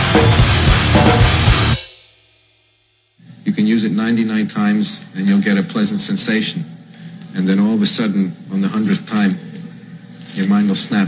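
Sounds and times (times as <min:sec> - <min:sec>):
grindcore drums and cymbals: 0:00.0 - 0:03.6.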